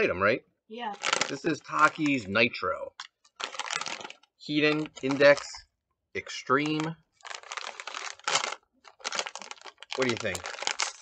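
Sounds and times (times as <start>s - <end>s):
foil snack bag crinkling: 0.9s - 2.3s, 3.0s - 5.6s, 6.4s - 11.0s.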